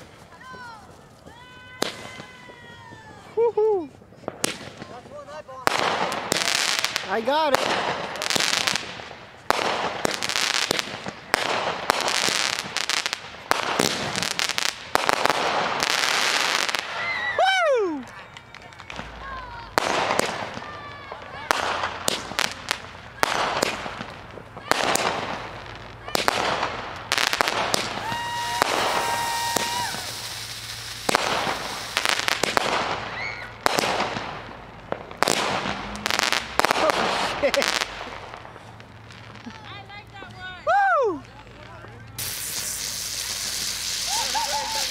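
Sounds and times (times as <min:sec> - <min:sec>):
fireworks bangs and crackling: 0:00.0 - 0:44.9
falling firework whistle: 0:27.7 - 0:33.7, 0:42.2 - 0:44.9.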